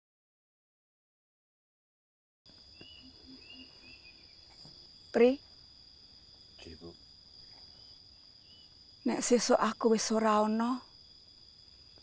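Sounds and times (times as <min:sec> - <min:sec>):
crickets droning: 0:02.5 - 0:12.0
insect chirps: 0:02.5 - 0:12.0.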